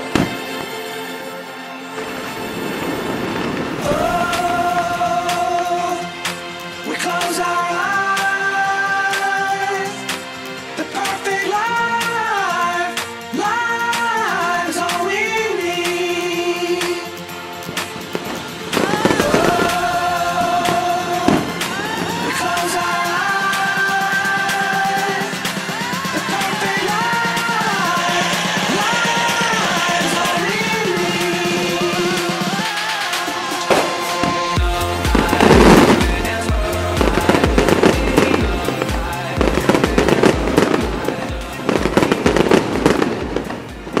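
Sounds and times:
music: 0:00.0 - 0:44.0
fireworks crackling and popping: 0:02.0 - 0:07.3, 0:14.8 - 0:44.0.

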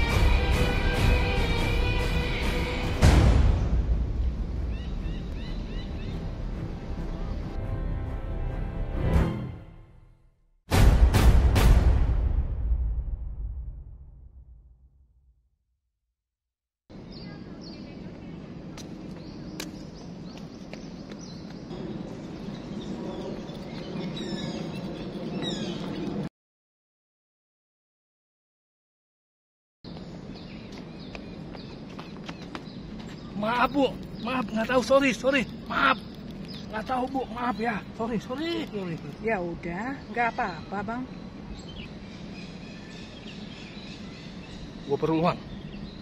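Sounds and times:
birds chirping: 0:04.2 - 0:07.6, 0:16.9 - 0:26.3, 0:29.9 - 0:46.0.

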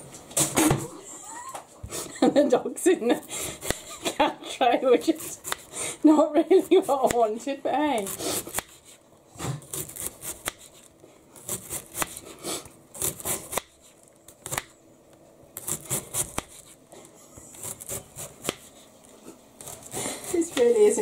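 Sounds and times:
knife slicing cabbage: 0:03.3 - 0:04.1, 0:05.0 - 0:06.0, 0:07.9 - 0:14.7, 0:15.6 - 0:16.9, 0:17.5 - 0:18.9, 0:19.6 - 0:21.0.

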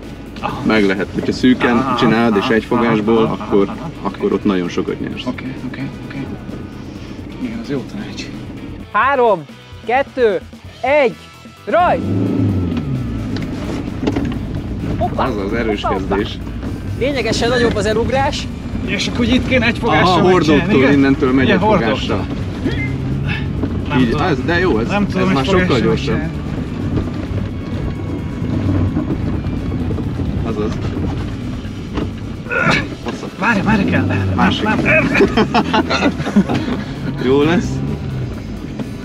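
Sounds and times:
car engine accelerating hard: 0:00.0 - 0:09.2, 0:11.7 - 0:39.0.

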